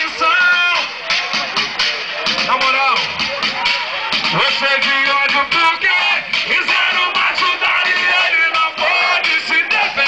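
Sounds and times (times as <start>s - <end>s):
funk music with vocals: 0.0s - 10.0s.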